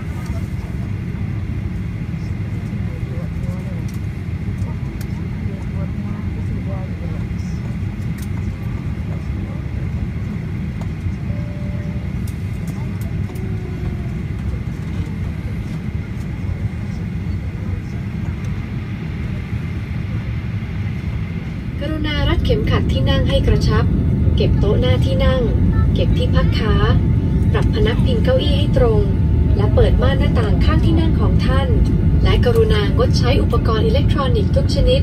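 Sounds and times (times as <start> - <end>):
low engine rumble: 0.0 - 35.0
thin steady whine: 0.0 - 35.0
woman announcing over speakers: 21.8 - 35.0.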